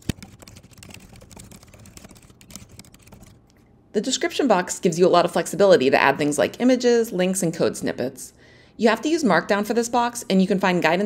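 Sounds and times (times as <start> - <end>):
fast typing on keyboard: 0.0 - 3.5.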